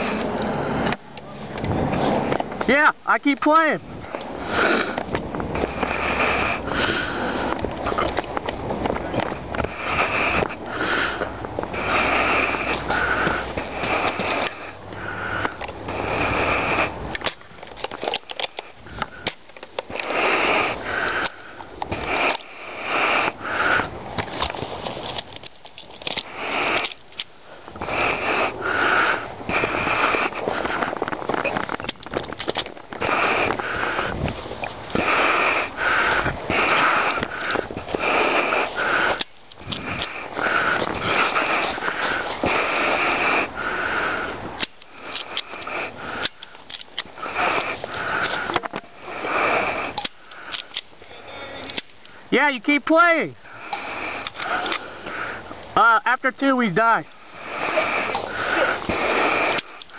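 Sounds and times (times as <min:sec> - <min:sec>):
person panting: 0:04.0 - 0:08.2, 0:09.4 - 0:17.0, 0:18.7 - 0:24.0, 0:26.2 - 0:31.8, 0:32.9 - 0:51.5, 0:53.4 - 0:55.6, 0:57.0 - 0:59.9.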